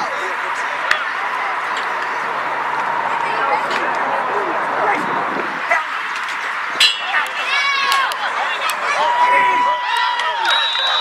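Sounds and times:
high-pitched yell: 6.8 - 11.0
people shouting: 6.8 - 11.0.

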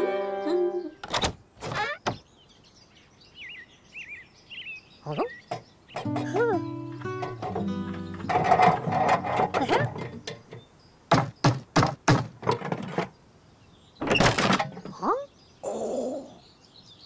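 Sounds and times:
cartoon music with held notes: 0.0 - 1.0, 6.0 - 10.2
sharp knocks: 5.5 - 13.1.

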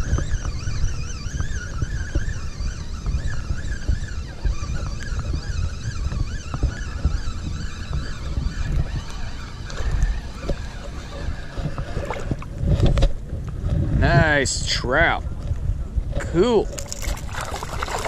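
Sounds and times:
fishing reel whirring: 0.0 - 12.9, 16.7 - 18.0
wind rumbling on microphone: 0.0 - 18.0.

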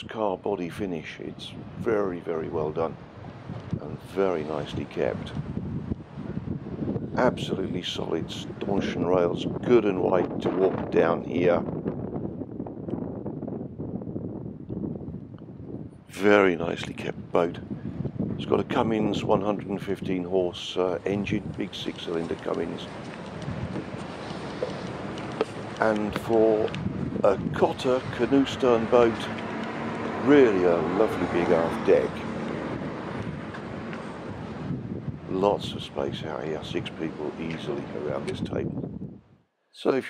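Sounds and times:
wind buffeting microphone: 0.0 - 39.4.

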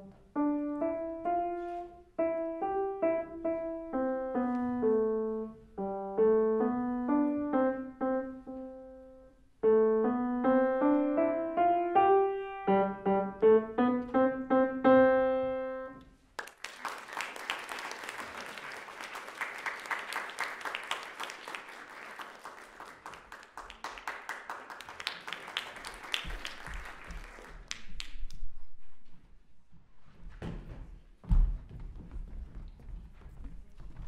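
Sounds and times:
grand piano playing: 0.0 - 16.0
audience applauding: 16.4 - 28.1.

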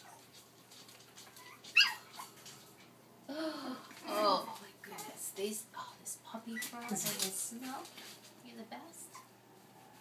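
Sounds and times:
dog yipping: 0.0 - 0.3, 1.2 - 2.4.

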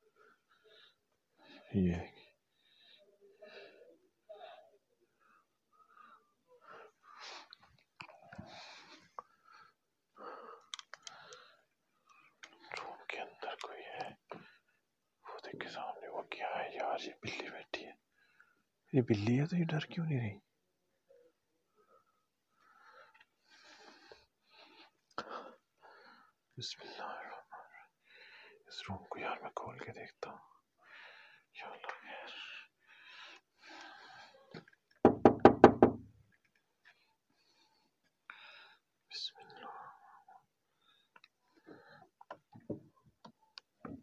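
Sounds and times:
man whispering: 0.0 - 9.4, 10.6 - 22.1, 24.0 - 33.4, 39.0 - 42.4
knocks on wooden door: 35.1 - 36.1.

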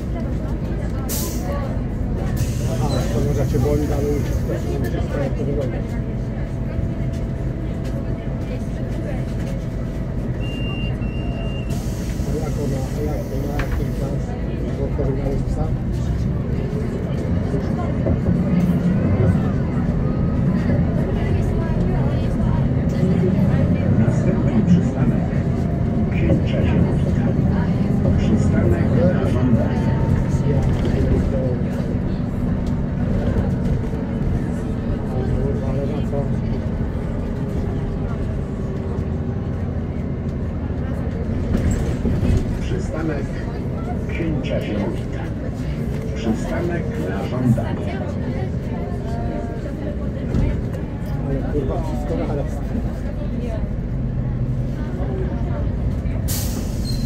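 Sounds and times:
bus diesel engine running: 0.0 - 57.0.

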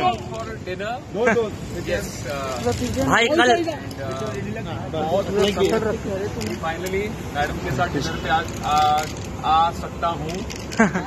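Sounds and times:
street noise: 0.0 - 11.0
voices talking and calling out: 0.0 - 11.0.

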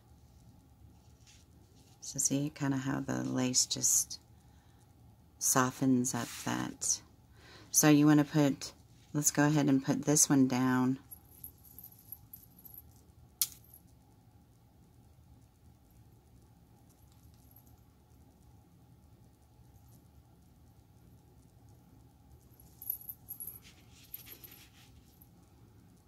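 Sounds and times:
soft rustling and crinkling: 0.0 - 3.4, 22.3 - 26.0.

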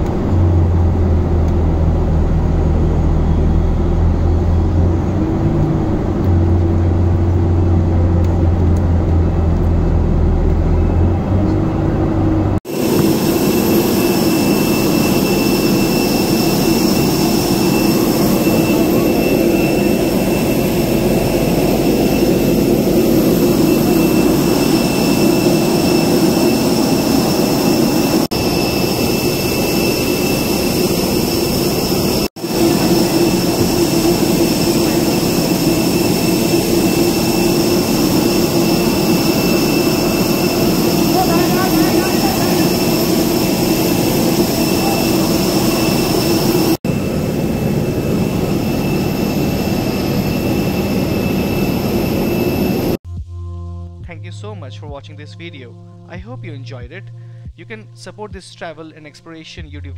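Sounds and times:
jet aircraft roar: 0.0 - 53.0
high-pitched jet whine: 0.0 - 53.2
deep hum: 0.0 - 58.4.

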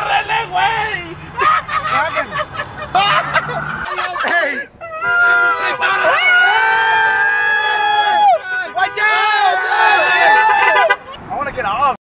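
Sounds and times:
men yelling long shouts: 0.0 - 11.0.

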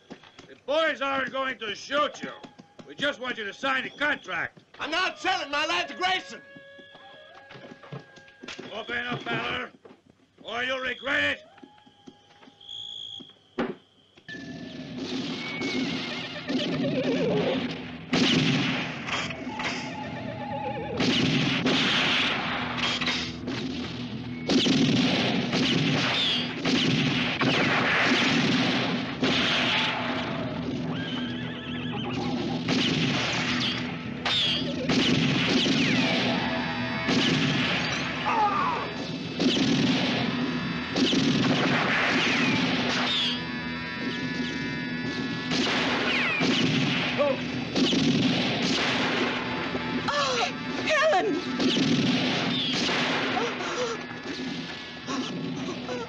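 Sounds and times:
people shouting: 4.8 - 8.4, 35.8 - 39.0.

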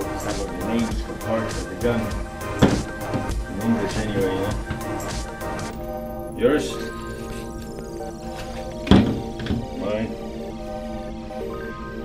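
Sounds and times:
background music: 0.0 - 12.0
thumps: 2.0 - 5.7, 8.8 - 9.8.

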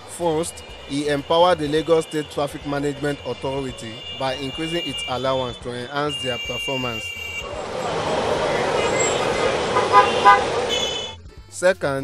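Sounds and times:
busy road traffic: 0.0 - 11.2
car horn tooting: 0.0 - 11.2.

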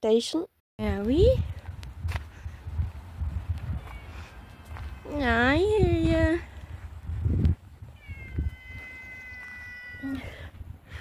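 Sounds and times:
cat meowing: 3.8 - 4.4, 8.0 - 10.4.

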